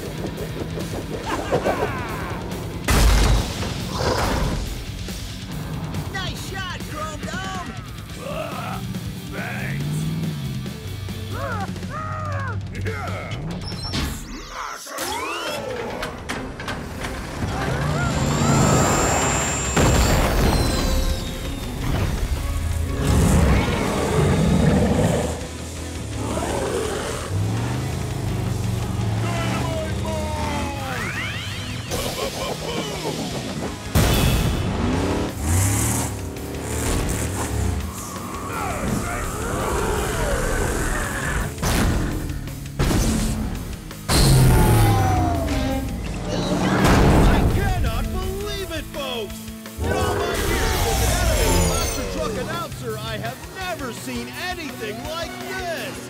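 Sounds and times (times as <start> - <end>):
monster truck engines revving: 0.0 - 2.9, 3.7 - 56.0
action soundtrack music: 0.0 - 56.0.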